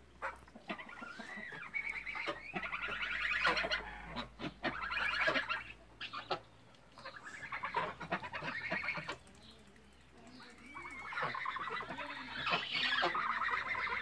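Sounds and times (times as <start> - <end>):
geese honking: 0.2 - 9.2, 10.6 - 14.0.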